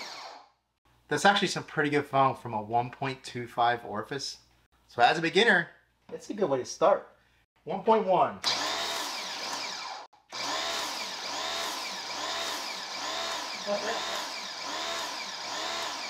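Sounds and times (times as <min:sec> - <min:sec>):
pressure washer pump pulsing: 0:08.5 - 0:16.0.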